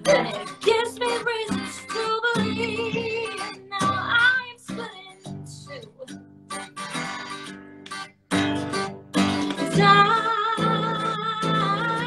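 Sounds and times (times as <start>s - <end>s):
woman singing: 0.0s - 6.2s, 9.2s - 12.0s
acoustic guitar strums: 0.0s - 12.0s.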